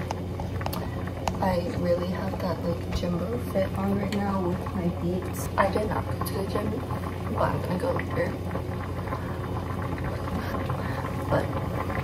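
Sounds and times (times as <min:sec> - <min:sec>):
soup cooking with low hum: 0:00.0 - 0:12.0.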